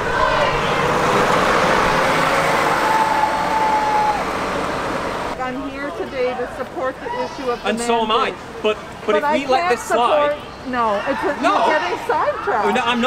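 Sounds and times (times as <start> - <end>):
bus driving past: 0.0 - 8.6.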